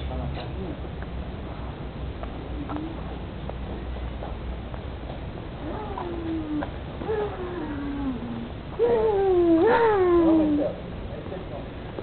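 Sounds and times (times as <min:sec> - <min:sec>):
faint footsteps: 0:01.0 - 0:07.2.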